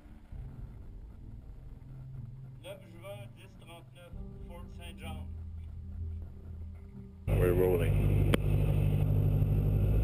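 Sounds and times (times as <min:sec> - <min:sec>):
low steady hum: 0:05.2 - 0:10.0.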